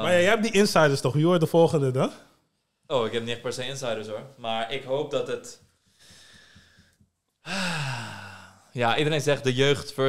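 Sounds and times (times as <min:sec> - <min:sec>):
faint breath: 0:05.8 - 0:08.8
man's breathy falling sigh: 0:07.4 - 0:08.7.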